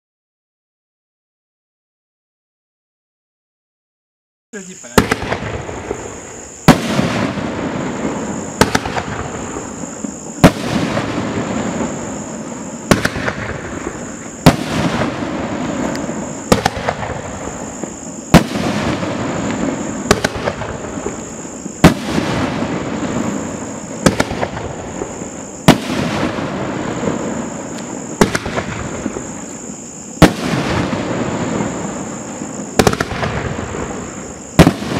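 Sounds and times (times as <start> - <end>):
firework reports: 4.6 - 34.9
rumbling after firework bangs: 4.9 - 34.9.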